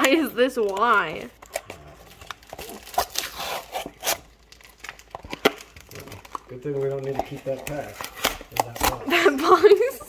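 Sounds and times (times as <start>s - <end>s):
wrapped packs rustling: 0.5s - 9.6s
cardboard scraping and tearing: 2.5s - 4.2s.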